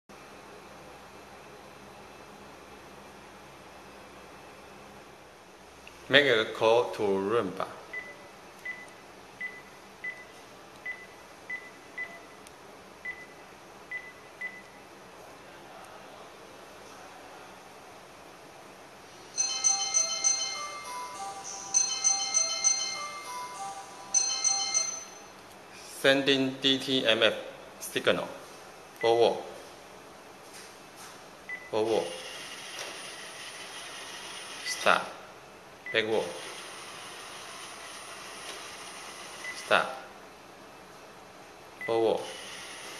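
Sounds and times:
robot vacuum motors whirring: 32.3s - 34.7s, 36.4s - 39.4s.

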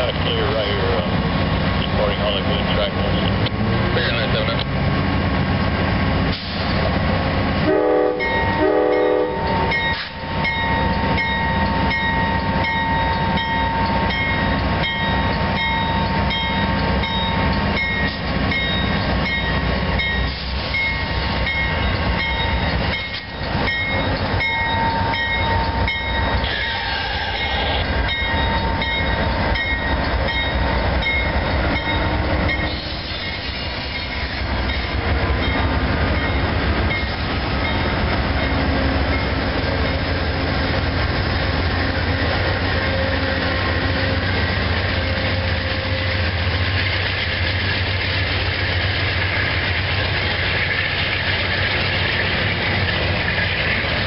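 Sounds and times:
diesel locomotive engines running: 0.0s - 54.0s
locomotive horn blasts: 7.6s - 9.8s
bell ringing: 8.2s - 32.8s.

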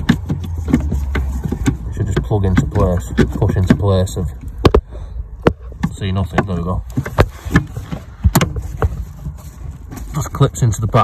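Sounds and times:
handling rumble: 0.0s - 11.0s
plastic knocks: 5.4s - 9.3s.

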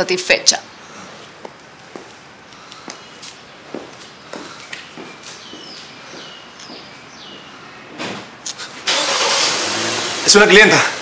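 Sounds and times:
car engine starting and running: 8.8s - 11.0s.

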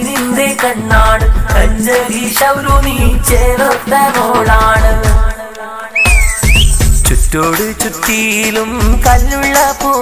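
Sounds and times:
percussion beat: 0.0s - 10.0s
person singing: 0.0s - 10.0s
whistling tone: 5.9s - 7.1s.

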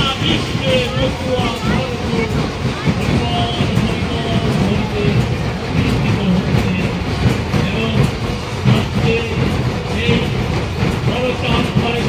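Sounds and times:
large crowd din: 0.0s - 12.0s.

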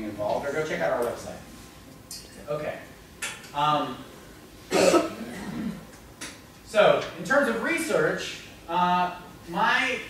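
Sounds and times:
person coughing: 4.7s - 5.8s.

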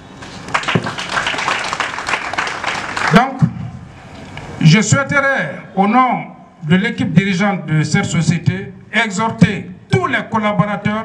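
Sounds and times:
crowd applauding: 0.5s - 3.4s.

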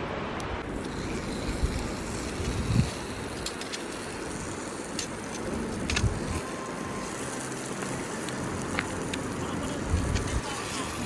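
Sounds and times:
campfire crackling and popping: 0.6s - 11.0s
steak searing hiss: 0.7s - 11.0s.

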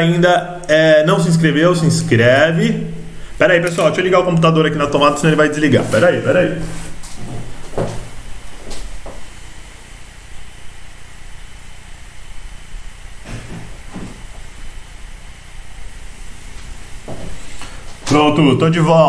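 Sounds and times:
low room hum: 0.0s - 19.0s
power cord plugging knocks: 13.2s - 14.2s.

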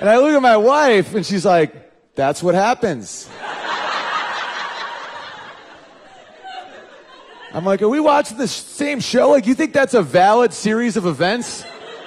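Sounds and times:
audience laughing: 3.3s - 8.5s, 11.1s - 12.0s.

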